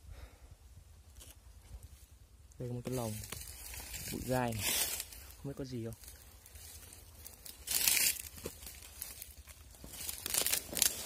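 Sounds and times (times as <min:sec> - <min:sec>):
dry leaves and brush rustling: 0:01.0 - 0:11.0.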